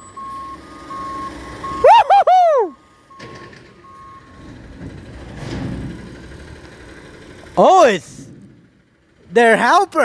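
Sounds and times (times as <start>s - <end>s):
reversing alarm beeping: 0.0s - 1.9s, 3.1s - 4.4s
garbage truck engine: 0.0s - 10.0s.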